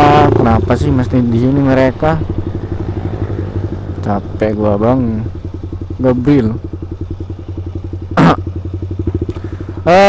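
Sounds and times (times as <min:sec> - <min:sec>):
motorcycle engine running steadily: 0:00.0 - 0:10.0.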